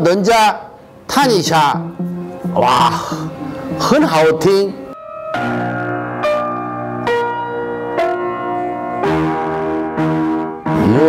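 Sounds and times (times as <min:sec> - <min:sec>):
piano playing slow chords: 0:01.7 - 0:11.0.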